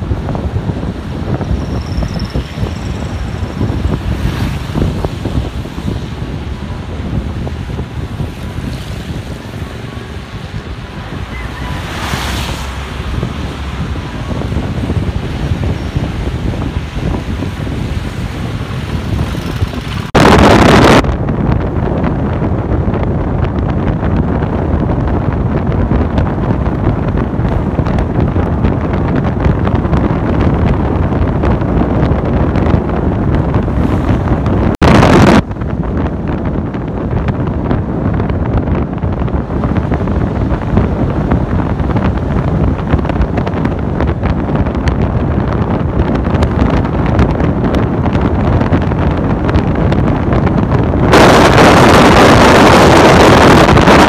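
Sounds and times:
vehicle and road rumble: 0.0 - 54.0
wind rushing over microphone: 0.0 - 54.0.

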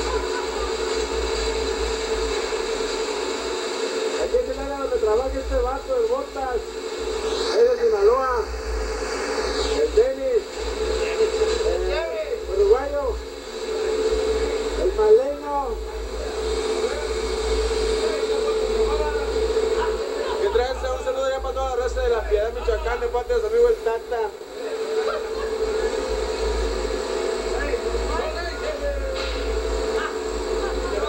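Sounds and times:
droning hum: 0.0 - 31.0.

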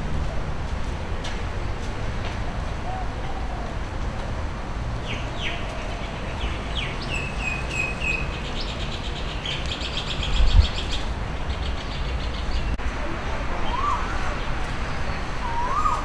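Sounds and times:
small birds chirping: 5.0 - 12.8.

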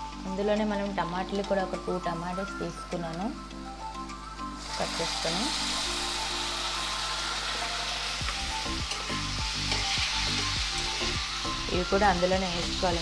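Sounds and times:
tomatoes sizzling in hot oil: 4.1 - 13.0.

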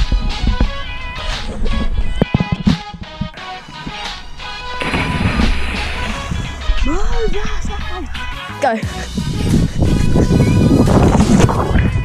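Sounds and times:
background music: 0.0 - 12.0
person splashing into water: 4.8 - 6.7.

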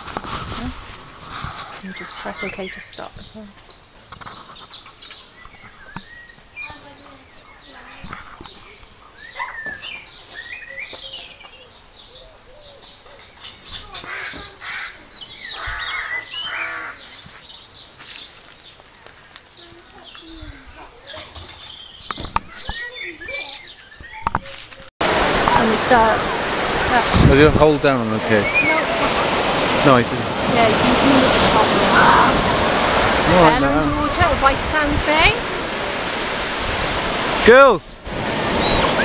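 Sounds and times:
small birds chirping: 1.6 - 24.9, 28.0 - 30.0, 38.4 - 39.0.

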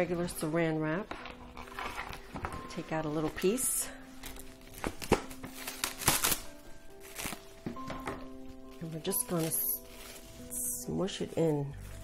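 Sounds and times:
soft background music: 0.0 - 12.0
cling wrap crinkling and tearing: 1.2 - 2.4, 4.0 - 7.6, 8.6 - 12.0.

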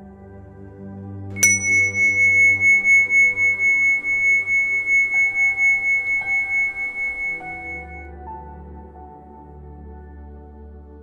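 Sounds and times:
soft ambient music: 0.0 - 11.0
meditation bell ringing: 1.4 - 8.0.

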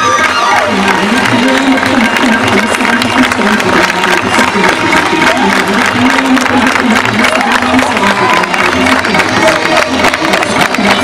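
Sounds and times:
crowd in background: 0.0 - 11.0.

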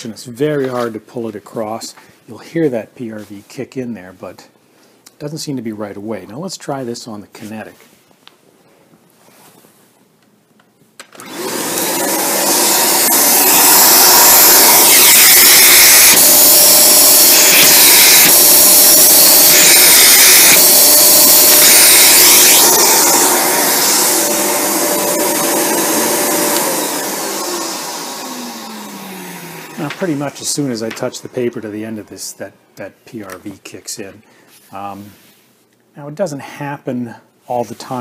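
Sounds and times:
vacuum cleaner running: 11.1 - 31.9
motor winding down: 11.2 - 31.6.

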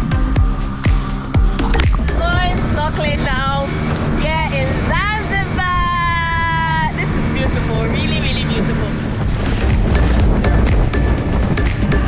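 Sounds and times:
outboard engine running: 0.0 - 12.0.

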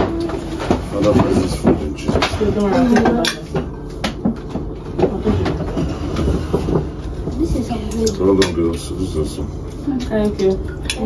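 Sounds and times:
plates and cutlery clinking: 0.0 - 8.6.

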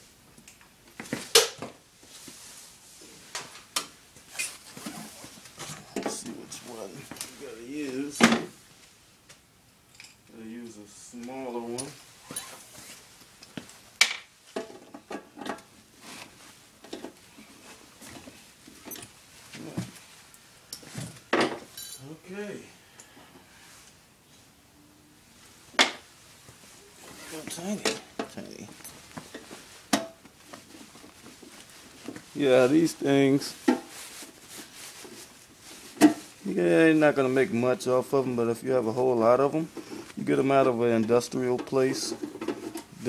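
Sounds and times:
metal hand tools clinking: 21.7 - 22.1.

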